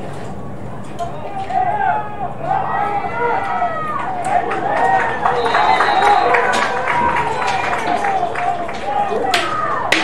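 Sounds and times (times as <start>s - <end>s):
spectators yelling and cheering: 1.0s - 10.0s
faint high whistle tone: 5.4s - 6.6s.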